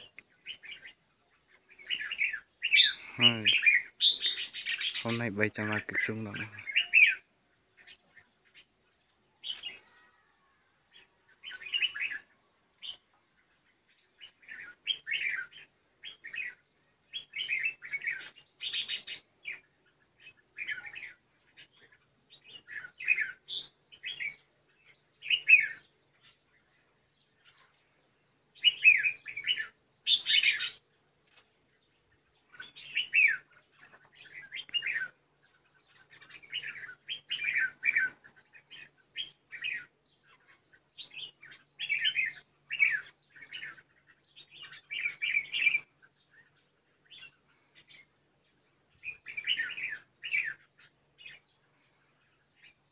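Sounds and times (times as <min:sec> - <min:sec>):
birds chirping: 0:00.0 - 0:52.9.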